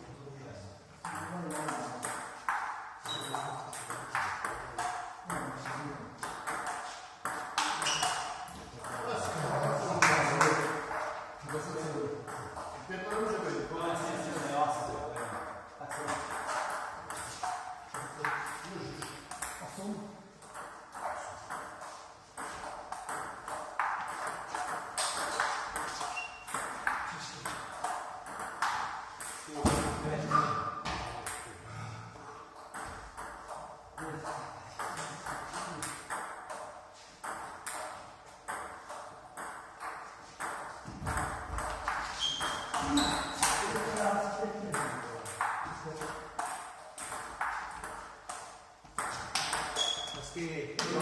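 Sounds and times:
table tennis ball tapping: 1.0 - 9.4, 20.4 - 30.0, 34.7 - 50.1.

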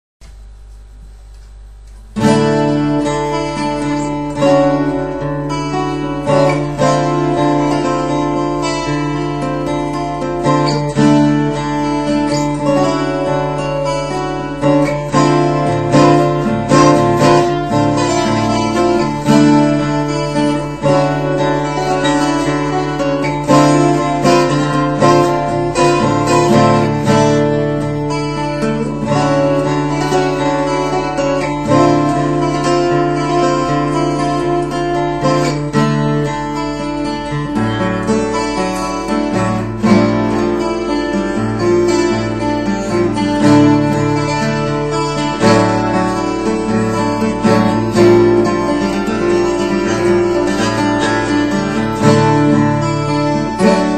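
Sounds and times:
acoustic guitar arpeggiated chords: 1.4 - 53.9.

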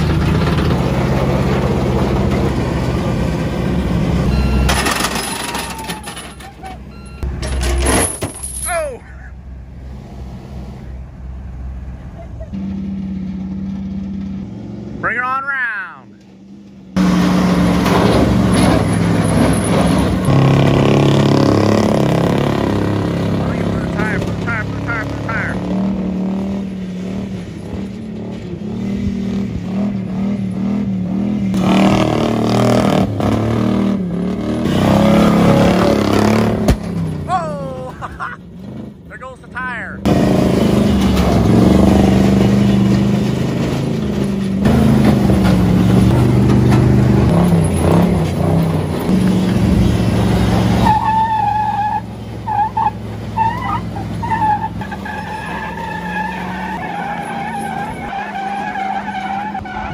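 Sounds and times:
pickup truck engine revving under load: 17.0 - 37.3, 40.0 - 59.9.

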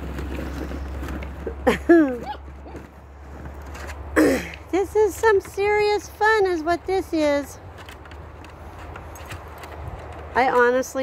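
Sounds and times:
wind rumbling on microphone: 7.6 - 11.0.

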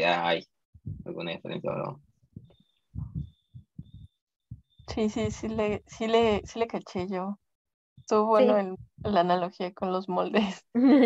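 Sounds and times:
faint low muffled thumps: 0.8 - 7.3, 8.4 - 9.4.

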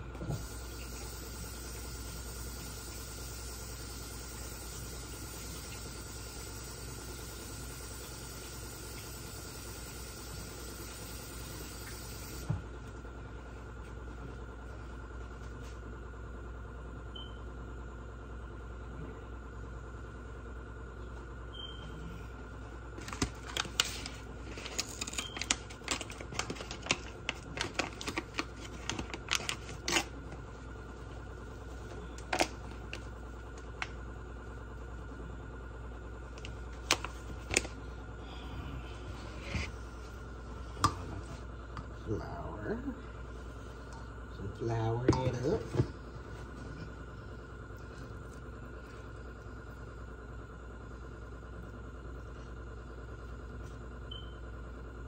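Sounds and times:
low hum: 10.1 - 54.9.

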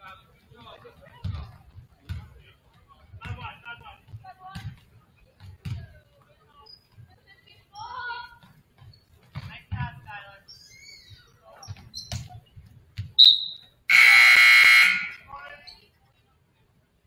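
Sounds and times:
referee's whistle blast: 13.2 - 15.2
people shouting: 13.9 - 15.2
scoreboard horn buzz: 13.9 - 15.2.

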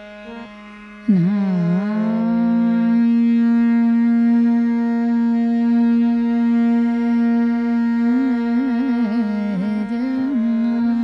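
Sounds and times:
woman singing classical vocal: 0.2 - 11.0.

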